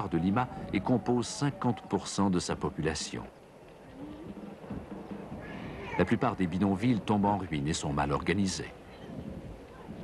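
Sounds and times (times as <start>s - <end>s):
background ambience: 0.0s - 10.0s.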